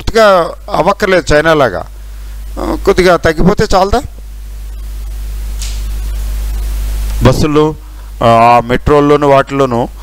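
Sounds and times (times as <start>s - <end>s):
electrical mains hum: 0.0s - 10.0s
faint microphone hiss: 0.0s - 10.0s.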